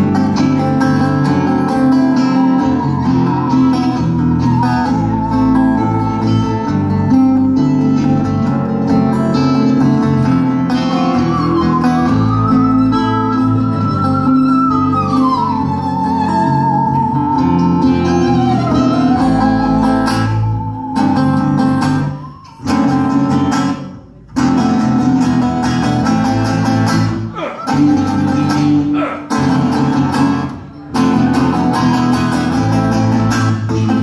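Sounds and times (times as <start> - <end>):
acoustic guitars strumming chords: 0.0 - 34.0.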